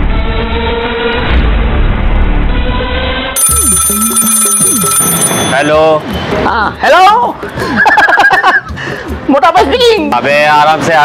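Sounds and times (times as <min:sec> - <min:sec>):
phone ringtone: 0:03.4 - 0:06.0.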